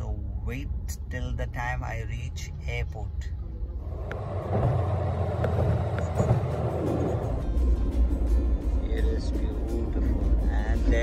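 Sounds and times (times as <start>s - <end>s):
engine and tyre rumble: 0.0s - 11.0s
music playing: 5.4s - 11.0s.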